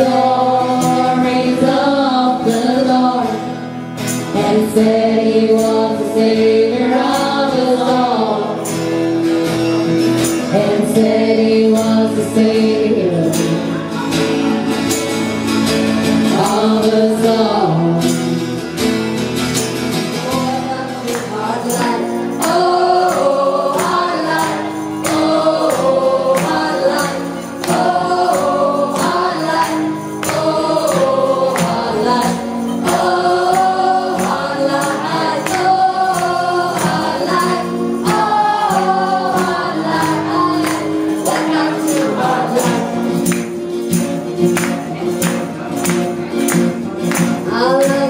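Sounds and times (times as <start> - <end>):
women singing: 0.0 - 8.8, 10.3 - 14.0, 16.2 - 18.3, 20.2 - 44.1, 47.2 - 48.0
live acoustic band music: 0.0 - 48.0
strummed acoustic guitar: 0.0 - 48.0.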